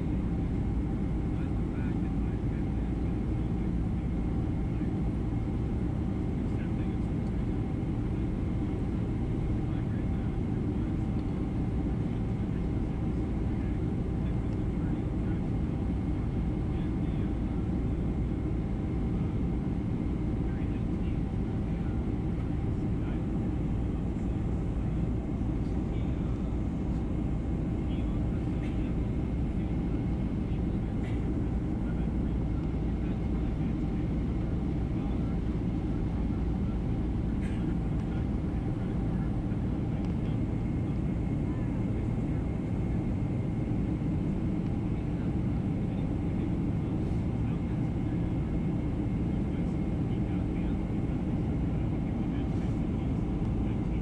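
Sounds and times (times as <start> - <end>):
airflow and jet engine drone: 0.0 - 54.0.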